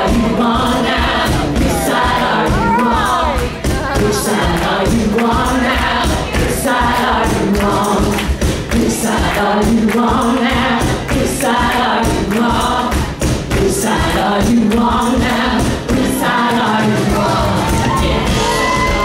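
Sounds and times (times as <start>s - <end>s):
drums: 0.0s - 19.0s
women singing together: 0.0s - 19.0s.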